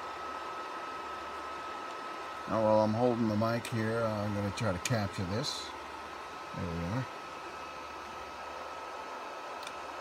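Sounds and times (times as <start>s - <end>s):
fan-like hiss: 0.0s - 10.0s.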